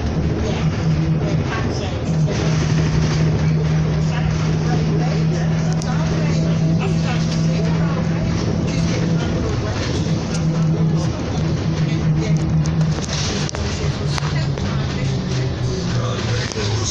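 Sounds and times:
bus engine droning: 0.0s - 16.9s
voices talking: 0.0s - 16.9s.

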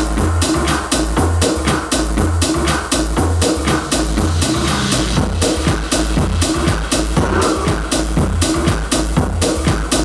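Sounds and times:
crisp hi-hats: 0.0s - 10.0s
deep pulsing bassline: 0.0s - 10.0s
electronic dance music: 0.0s - 10.0s.

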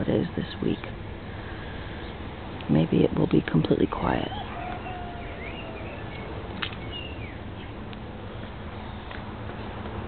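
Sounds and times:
bird chirps: 4.1s - 7.8s.

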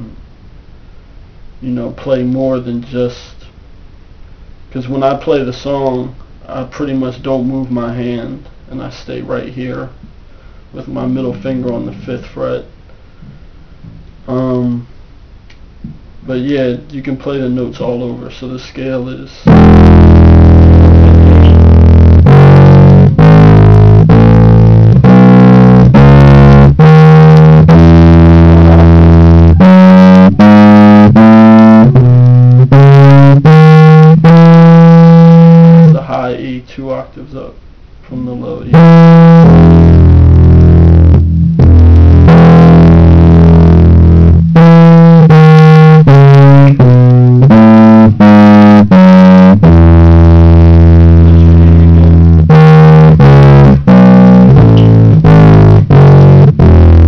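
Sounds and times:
distorted electric bass scale: 0.0s - 3.0s, 10.7s - 14.9s, 19.4s - 36.4s, 38.2s - 57.0s.

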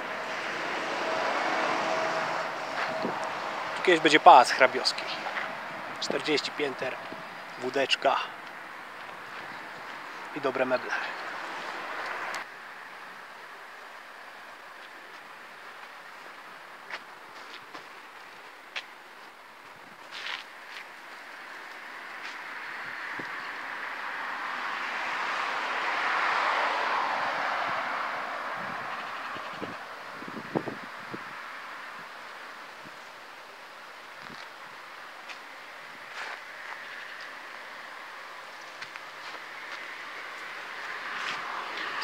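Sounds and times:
passing vehicle rushing: 0.0s - 8.9s, 21.8s - 32.2s, 39.4s - 42.0s.

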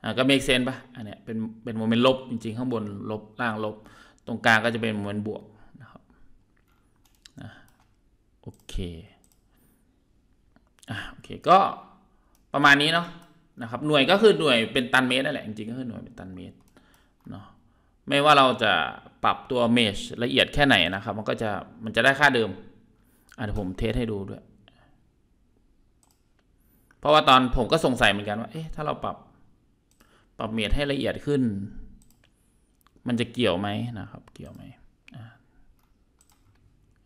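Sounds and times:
computer mouse clicks: 6.5s - 9.5s, 12.3s - 12.5s, 16.6s - 17.4s, 26.0s - 27.0s, 29.9s - 30.1s, 32.0s - 33.0s, 34.2s - 37.0s.

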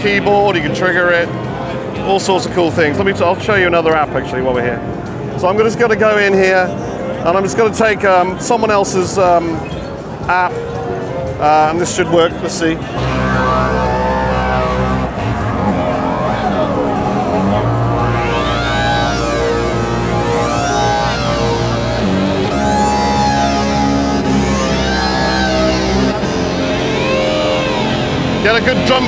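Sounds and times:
synthesizer bass notes and chords: 12.8s - 29.0s
high sweeping synth tone: 12.9s - 29.0s.

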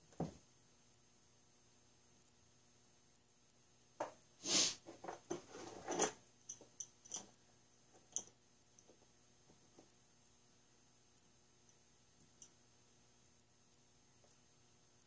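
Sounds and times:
tool scraping on mat: 4.4s - 6.2s.

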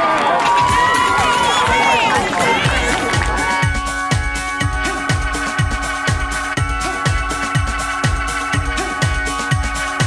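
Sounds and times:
crowd cheering and shouting: 0.0s - 8.0s
background music with low beat: 2.7s - 10.0s.

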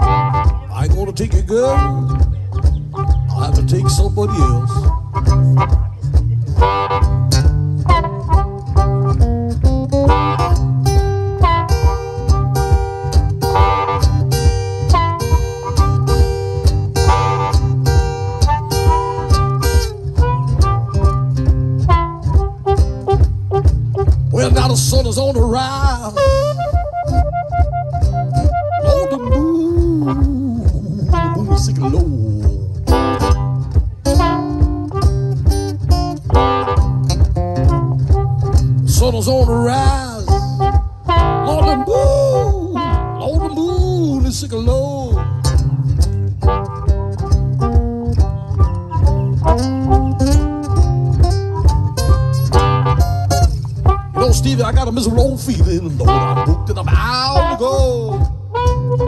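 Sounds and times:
acoustic guitar boogie rhythm: 0.0s - 59.0s
blues harmonica: 0.0s - 59.0s
steady low beat: 0.0s - 59.0s.

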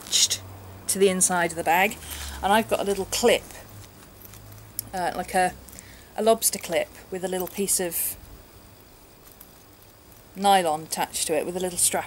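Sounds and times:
person speaking: 0.0s - 3.8s, 4.8s - 8.2s, 10.4s - 12.0s
faint steady background noise: 0.0s - 12.0s.

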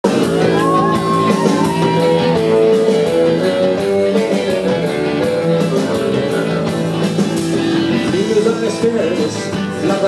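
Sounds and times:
rockabilly band playing: 0.0s - 10.0s.

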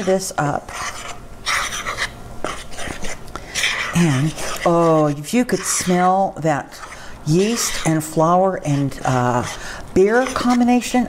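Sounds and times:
spoon scraping dough: 0.0s - 11.0s.

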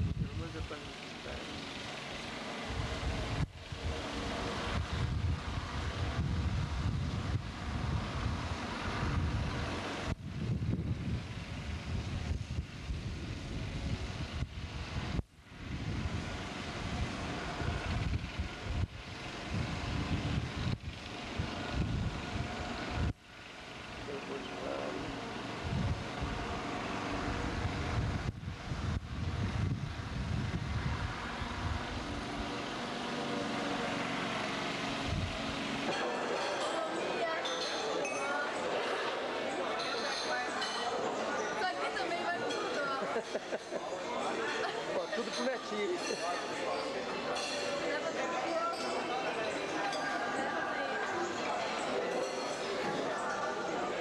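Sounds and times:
wind buffeting microphone: 0.0s - 0.8s, 2.7s - 23.2s, 25.5s - 32.6s.

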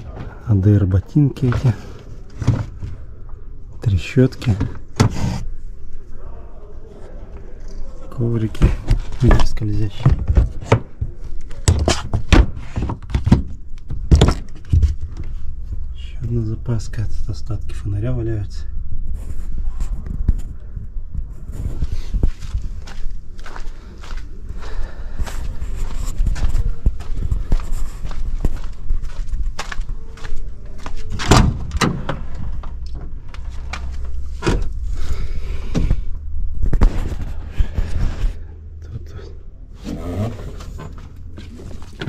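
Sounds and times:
steady low rumble: 13.6s - 42.0s
footsteps: 19.0s - 31.6s.

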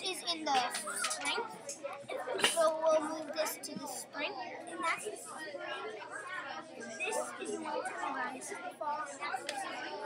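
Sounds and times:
indistinct background chatter: 0.0s - 10.0s.

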